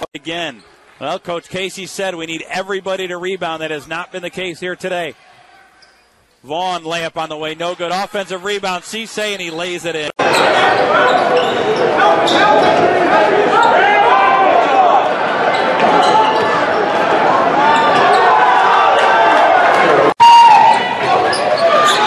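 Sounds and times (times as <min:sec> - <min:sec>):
sneakers squeaking: 0:05.5 - 0:06.4, 0:09.4 - 0:12.8, 0:15.4 - 0:17.0, 0:21.0 - 0:22.0
crowd voices: 0:07.0 - 0:22.0.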